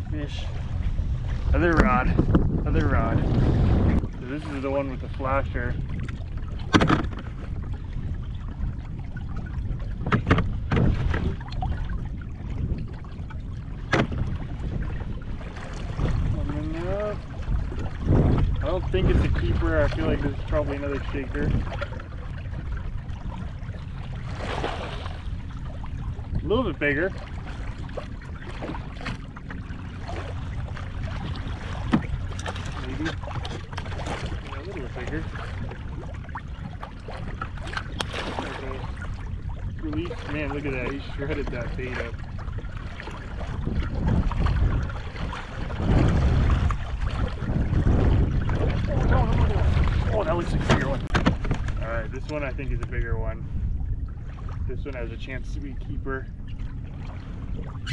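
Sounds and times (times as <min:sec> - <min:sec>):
steady low rumble: 0:00.0 - 0:57.9
water sloshing around kayak: 0:00.0 - 0:57.9
wind buffeting microphone: 0:00.0 - 0:57.9
short water splash: 0:09.4 - 0:52.4.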